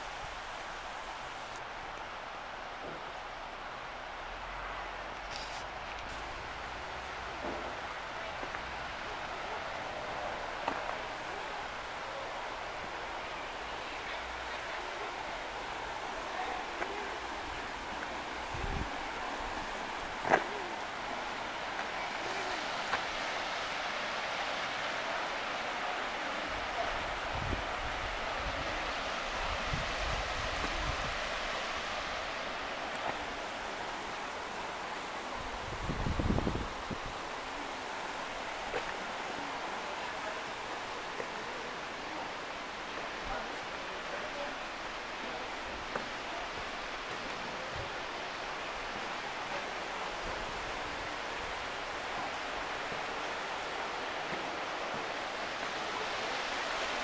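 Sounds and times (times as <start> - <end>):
river rapids rushing: 0.0 - 57.0.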